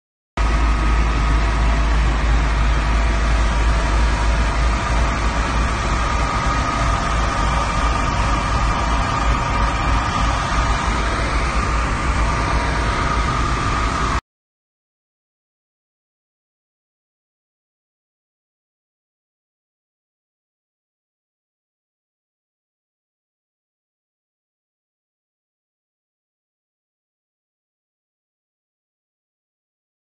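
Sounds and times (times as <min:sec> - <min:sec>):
fire engine drone: 0:00.4 - 0:14.2
high whine: 0:00.4 - 0:14.2.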